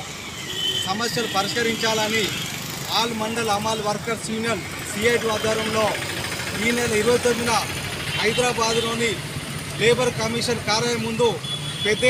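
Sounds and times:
road traffic noise: 0.0s - 12.0s
man speaking: 0.9s - 12.0s.

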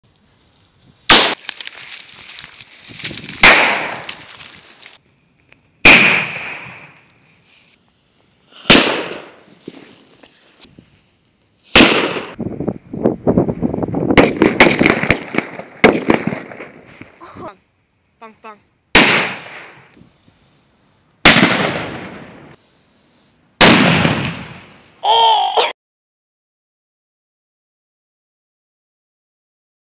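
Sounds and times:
firecracker bang: 1.1s - 1.4s, 3.2s - 4.3s, 5.8s - 7.0s, 8.6s - 9.4s, 11.7s - 12.4s, 14.1s - 16.9s, 19.0s - 19.8s, 21.2s - 22.6s, 23.6s - 24.8s
short high shout: 25.0s - 25.7s.

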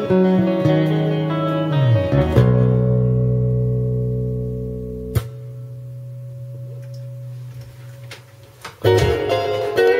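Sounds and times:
electric bass low note: 1.4s - 7.3s.

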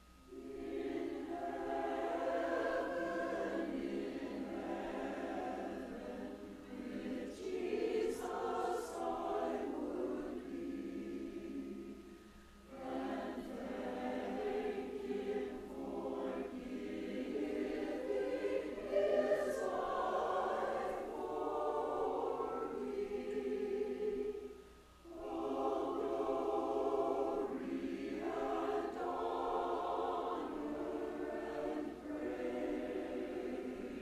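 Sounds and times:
choir singing: 0.0s - 34.0s.

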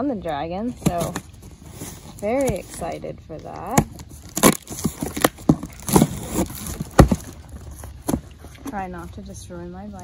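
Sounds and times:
tape and cardboard crackling: 0.0s - 9.4s
knife cutting packing tape: 3.6s - 7.3s.

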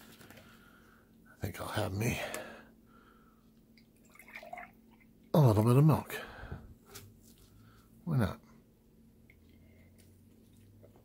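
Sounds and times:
milk pouring into a glass: 3.8s - 5.2s.

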